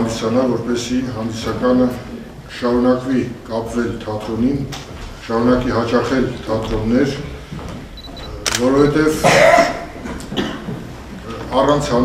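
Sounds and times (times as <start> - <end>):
man speaking: 0.0 - 7.5, 8.2 - 9.9, 11.2 - 12.0.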